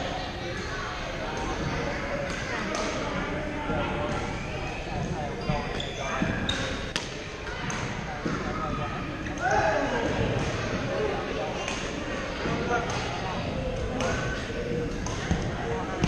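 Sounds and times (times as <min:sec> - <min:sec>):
players chattering: 0:00.0 - 0:16.0
shoes squeaking on court: 0:05.4 - 0:06.9.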